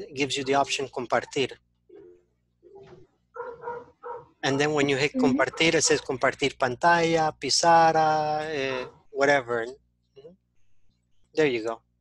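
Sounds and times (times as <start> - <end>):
dog barking and yipping: 2.8 - 4.4, 5.4 - 6.1, 8.6 - 9.0.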